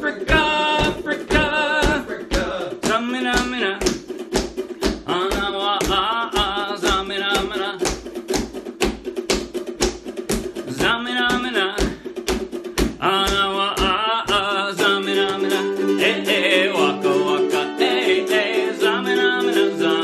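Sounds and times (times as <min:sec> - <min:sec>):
group singing led by man: 0:00.0 - 0:03.5, 0:13.9 - 0:20.0
ukuleles strumming: 0:00.0 - 0:20.0.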